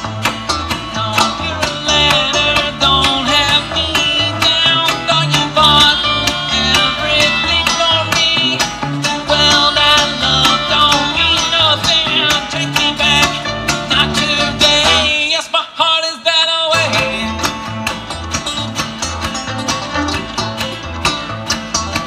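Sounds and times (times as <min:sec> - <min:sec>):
upright bass line: 0:00.0 - 0:15.4, 0:16.7 - 0:22.0
acoustic guitar picking: 0:00.0 - 0:15.5, 0:16.7 - 0:22.0
banjo picking: 0:00.0 - 0:22.0
mandolin: 0:00.0 - 0:22.0.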